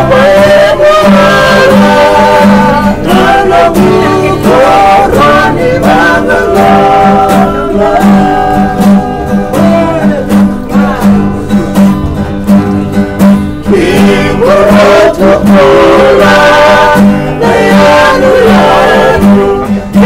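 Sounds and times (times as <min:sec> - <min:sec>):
men singing together: 0:00.0 - 0:11.6, 0:13.6 - 0:20.0
acoustic guitars strumming: 0:00.0 - 0:20.0.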